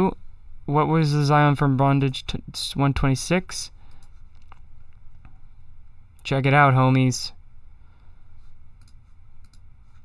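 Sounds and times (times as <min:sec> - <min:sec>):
low room hum: 0:00.0 - 0:10.0
computer mouse clicks: 0:08.8 - 0:10.0.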